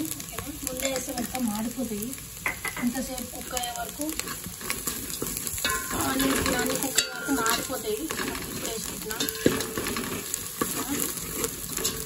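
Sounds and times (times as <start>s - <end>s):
onions sizzling in hot oil: 0.0s - 12.0s
steel ladle scraping a pot: 4.1s - 12.0s.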